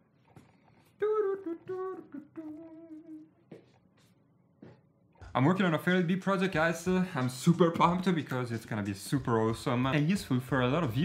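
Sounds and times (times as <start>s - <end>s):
man humming: 1.0s - 3.3s.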